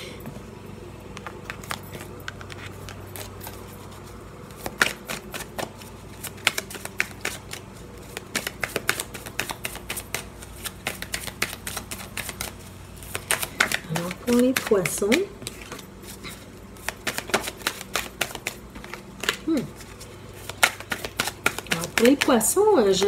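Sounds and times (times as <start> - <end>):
cards being shuffled: 1.1 - 23.0.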